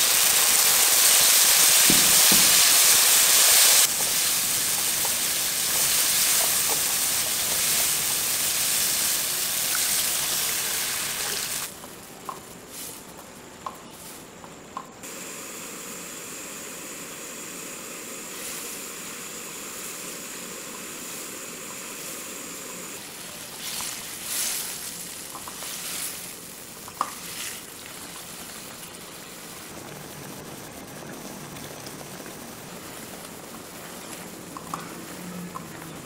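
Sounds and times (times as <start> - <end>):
sauce bubbling and sizzling: 0.0 - 12.0, 15.0 - 36.0.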